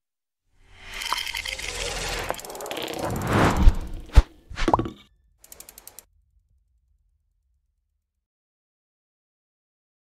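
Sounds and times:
sharp mechanical ratchet clicks: 5.4s - 6.0s.

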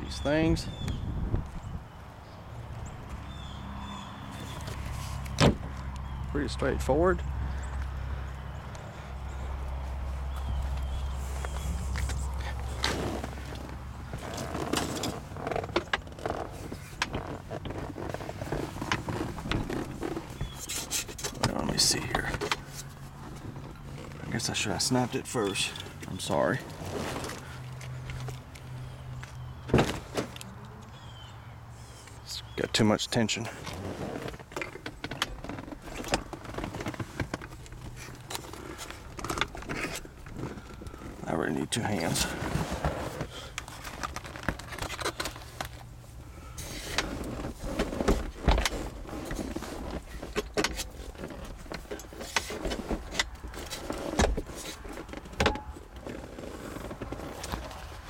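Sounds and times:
handling knocks and fabric movement: 10.2s - 30.5s, 33.5s - 41.2s, 41.8s - 58.0s.

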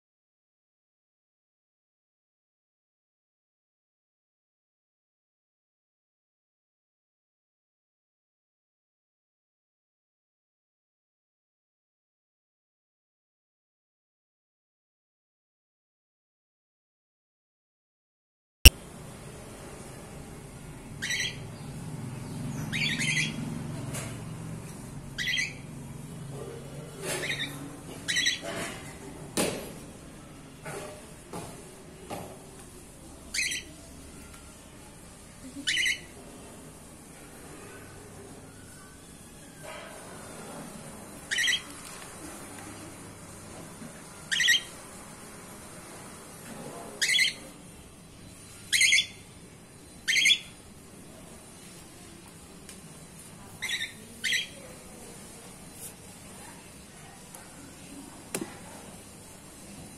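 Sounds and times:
cockatiel calling: 21.0s - 21.4s, 22.7s - 23.4s, 25.2s - 25.6s, 27.2s - 28.4s, 33.3s - 33.7s, 35.6s - 36.1s, 41.3s - 41.7s, 44.3s - 44.7s, 47.0s - 47.4s, 48.7s - 49.2s, 50.0s - 50.6s, 53.6s - 54.6s.

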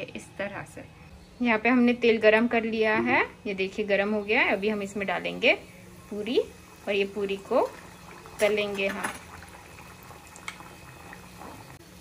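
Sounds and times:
oil bubbling and fizzing: 4.4s - 12.0s.

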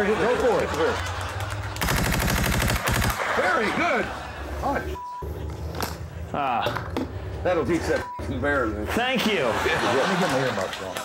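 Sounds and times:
automatic gunfire: 1.8s - 3.2s.

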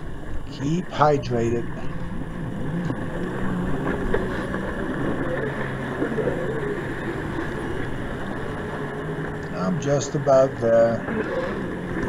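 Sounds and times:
small boat motor humming: 0.0s - 12.0s
water noise: 0.0s - 12.0s.

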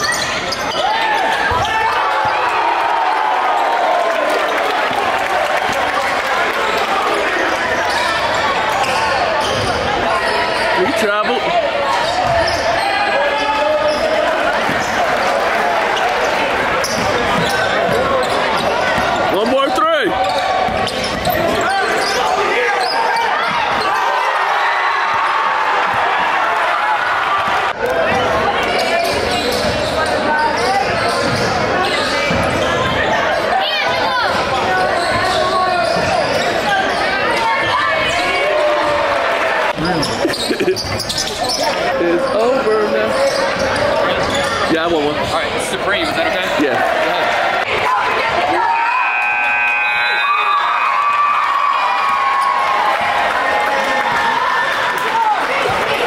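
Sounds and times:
voices echoing in gym: 0.0s - 56.0s
basketball bouncing on court: 12.0s - 12.7s, 20.1s - 22.1s, 29.1s - 33.0s.

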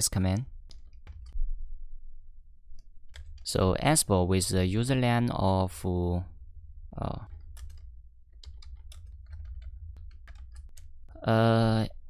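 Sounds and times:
low steady hum: 0.0s - 12.0s
typing on computer keyboard: 0.7s - 1.4s, 7.3s - 10.9s.

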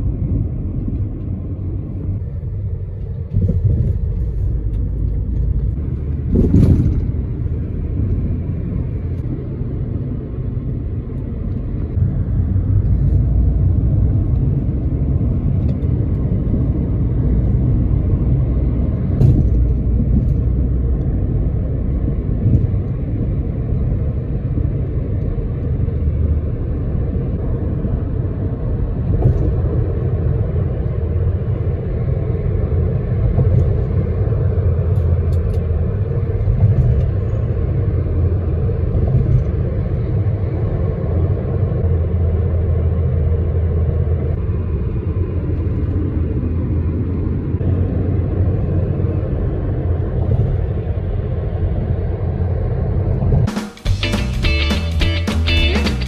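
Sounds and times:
road rumble inside vehicle: 0.0s - 56.0s.

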